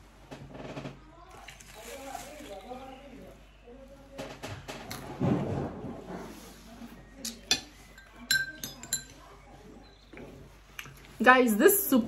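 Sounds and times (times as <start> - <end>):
faint voices talking: 0.4 - 12.0.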